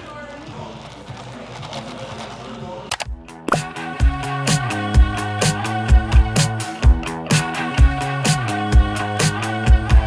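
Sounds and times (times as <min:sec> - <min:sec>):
ice cubes rattling in plastic cup: 0:00.0 - 0:03.0
background music: 0:00.0 - 0:10.0.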